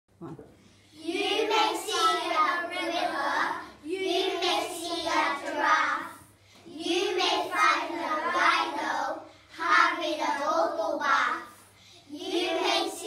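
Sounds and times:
children chanting in unison: 0:00.9 - 0:13.0.

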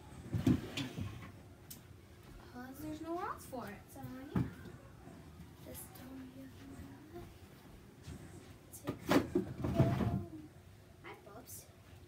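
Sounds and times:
household objects knocking and thumping: 0:04.3 - 0:04.6, 0:08.8 - 0:10.3.

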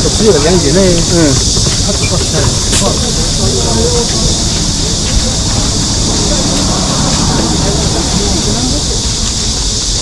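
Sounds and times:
people talking: 0:00.0 - 0:09.6
high-pitched insect drone: 0:00.0 - 0:10.0.

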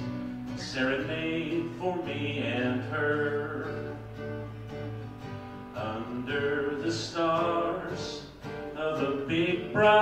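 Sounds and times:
acoustic guitar strumming: 0:00.0 - 0:10.0
man singing: 0:00.5 - 0:04.2, 0:05.7 - 0:10.0.

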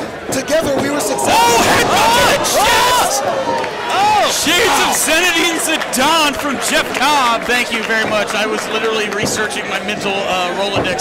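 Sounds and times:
crowd noise: 0:00.0 - 0:11.0
men shouting excitedly: 0:00.8 - 0:05.1.

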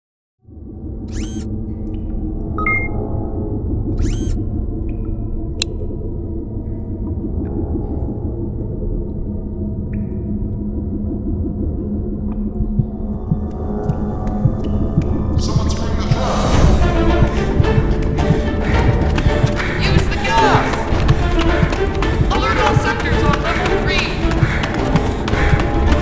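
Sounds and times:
low rumbling drone: 0:00.4 - 0:26.0.

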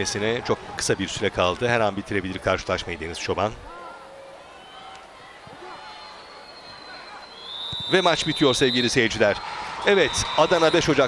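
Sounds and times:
stadium crowd noise: 0:00.0 - 0:11.0
referee whistle long blast: 0:05.7 - 0:11.0.

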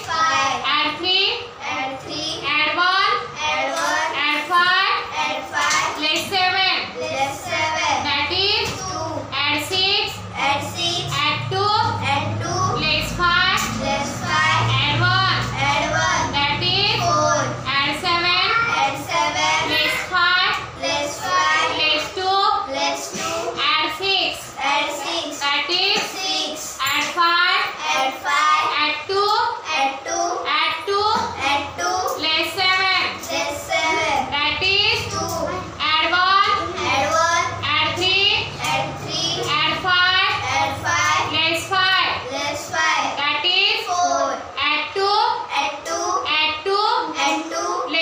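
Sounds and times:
children chanting numbers: 0:00.0 - 0:00.7, 0:03.0 - 0:48.0.

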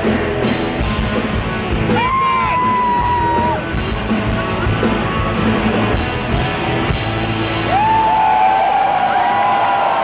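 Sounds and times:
rock band playing: 0:00.0 - 0:10.0
crowd cheering and whooping: 0:01.9 - 0:03.8, 0:06.5 - 0:10.0.

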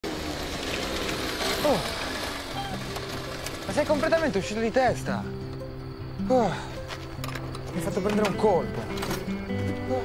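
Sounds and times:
small motorcycle engine running: 0:00.0 - 0:04.8.

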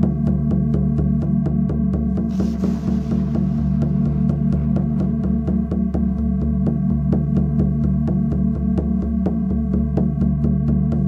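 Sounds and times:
pulsing meditation drone: 0:00.0 - 0:11.0.

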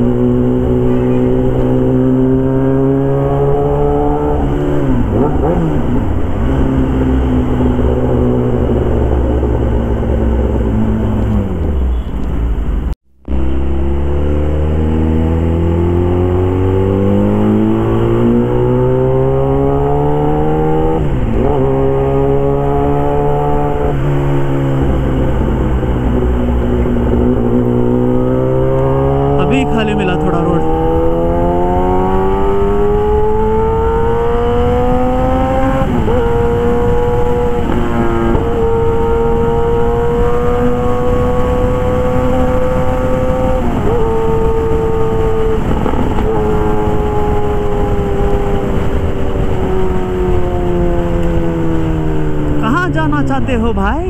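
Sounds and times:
motorcycle engine revving: 0:00.0 - 0:12.1, 0:13.2 - 0:54.0.

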